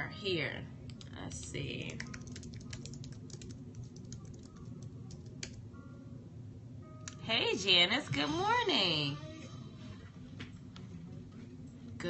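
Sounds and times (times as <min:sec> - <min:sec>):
low steady hum: 0:00.0 - 0:12.0
typing on keyboard: 0:01.9 - 0:05.6.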